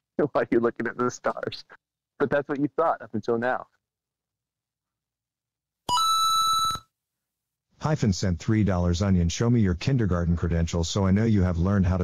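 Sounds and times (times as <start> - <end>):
ringing electronic alert tone: 5.9 - 6.8.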